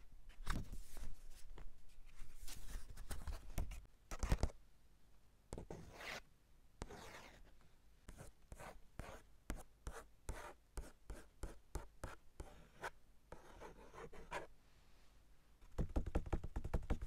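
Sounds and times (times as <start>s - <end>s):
fingernails tracing over paper: 6.8s - 7.5s.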